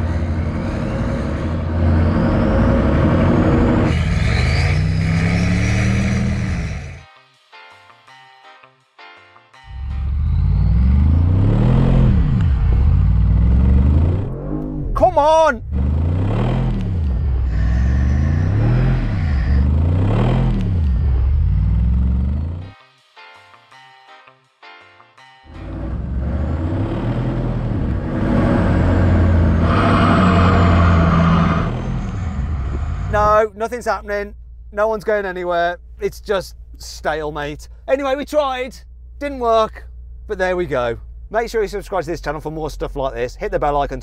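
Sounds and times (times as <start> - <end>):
off-road engines revving hard: 0.0 - 7.0, 10.0 - 14.3, 15.6 - 22.6, 25.6 - 33.5.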